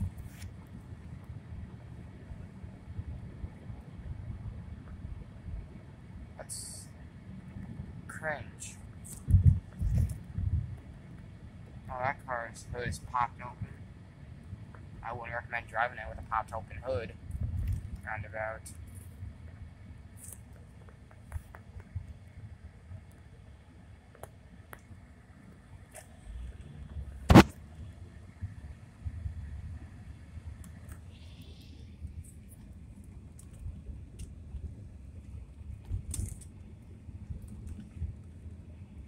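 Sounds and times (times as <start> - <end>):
car road noise rumble: 0.0 - 39.0
sharp loud knock: 27.3 - 27.6.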